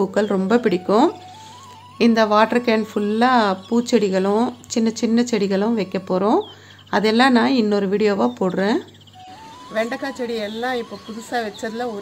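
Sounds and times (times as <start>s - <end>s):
woman speaking: 0.0s - 1.3s, 2.0s - 9.0s, 9.6s - 12.0s.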